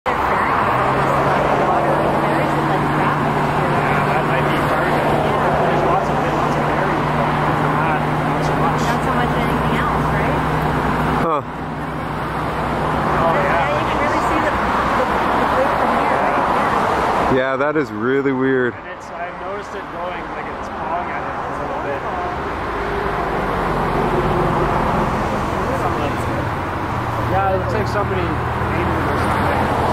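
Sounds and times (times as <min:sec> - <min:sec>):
people talking indistinctly: 0:00.0 - 0:29.9
road noise: 0:00.0 - 0:29.9
vehicle engine hum: 0:00.0 - 0:29.9.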